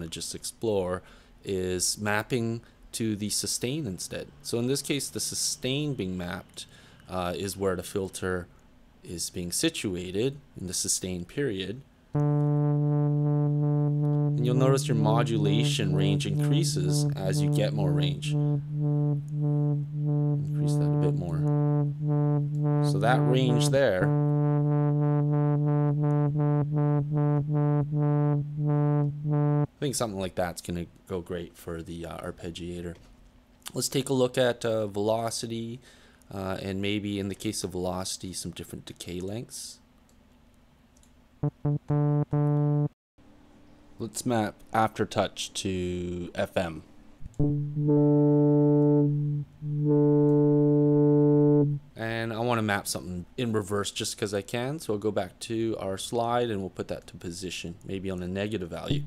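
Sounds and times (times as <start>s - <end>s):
held synth tone: 12.2s - 29.7s, 41.4s - 43.0s, 47.3s - 51.8s
synth repeating low note: 12.2s - 29.7s, 41.4s - 43.0s, 47.3s - 51.8s.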